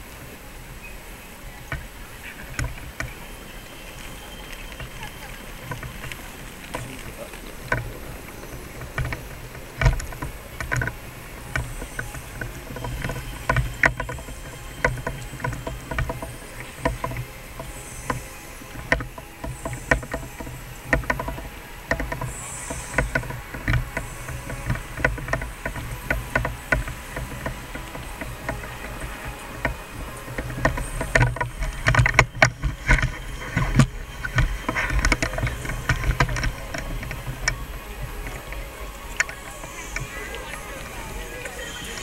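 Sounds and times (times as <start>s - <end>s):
murmur of crowd voices: 0.0s - 42.0s
footsteps: 1.6s - 42.0s.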